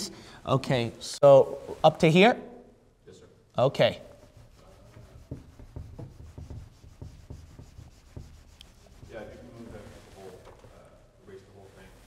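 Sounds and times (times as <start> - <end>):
marker writing on whiteboard: 4.1 - 9.8.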